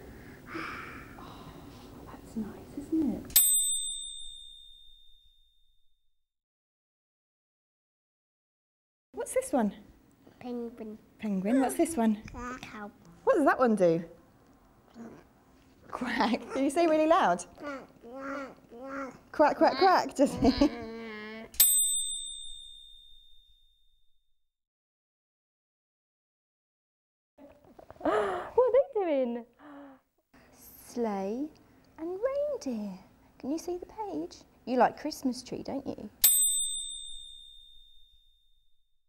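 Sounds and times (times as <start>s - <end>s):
high bell-like chime ringing: 3.3s - 5.6s, 21.6s - 23.8s, 36.2s - 38.6s.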